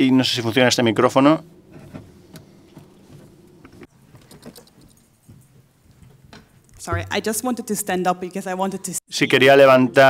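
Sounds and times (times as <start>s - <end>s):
low steady hum: 0.0s - 7.6s.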